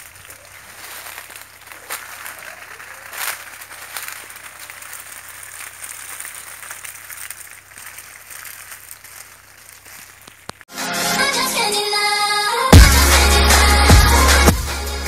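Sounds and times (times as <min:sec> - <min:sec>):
water spraying on leaves: 0:00.0 - 0:10.7.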